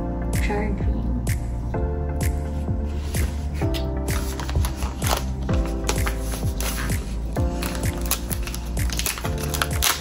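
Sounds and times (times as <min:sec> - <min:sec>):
background music with kick drum: 0:00.0 - 0:10.0
plastic packaging crinkling: 0:04.1 - 0:10.0.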